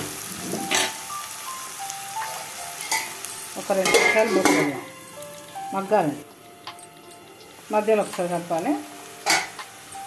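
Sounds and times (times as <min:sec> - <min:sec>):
onions sizzling in hot oil: 0:00.0 - 0:10.0
soft background music: 0:00.0 - 0:10.0.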